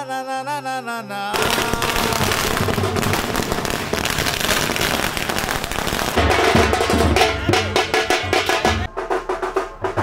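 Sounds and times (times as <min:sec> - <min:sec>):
firecrackers crackling: 0:01.4 - 0:08.8.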